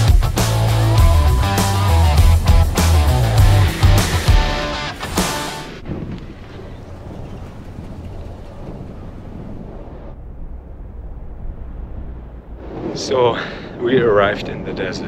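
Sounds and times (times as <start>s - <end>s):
background music: 0.0s - 5.8s
low steady rumble: 6.1s - 15.0s.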